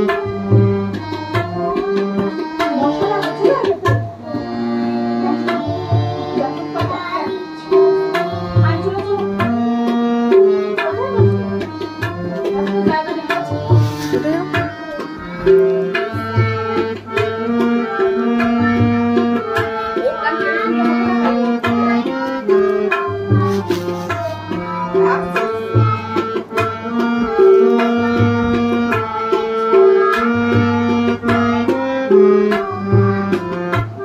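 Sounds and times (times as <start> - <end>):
harmonium notes: 0.0 - 34.0
tabla rhythm: 0.0 - 34.0.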